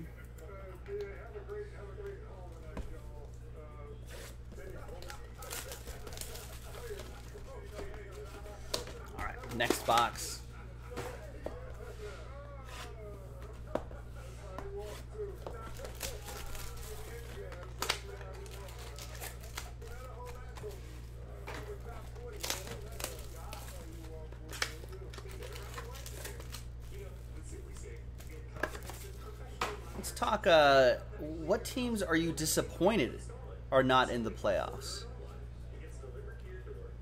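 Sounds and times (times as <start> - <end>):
faint voices: 0.0 - 37.0
foil wrappers crinkling: 4.0 - 30.2.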